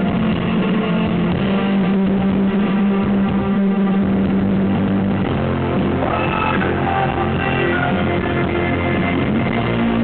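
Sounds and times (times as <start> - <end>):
electric guitar: 0.0 - 10.0
live rock band playing: 0.0 - 10.0.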